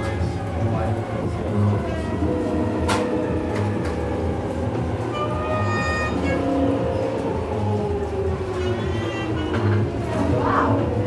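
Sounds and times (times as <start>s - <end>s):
train rumbling past platform: 0.0s - 11.0s.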